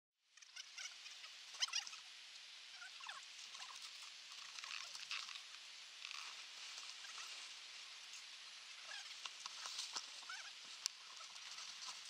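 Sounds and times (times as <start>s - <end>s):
steady high hiss: 0.2s - 12.0s
snow squeaking and crunching: 2.7s - 12.0s.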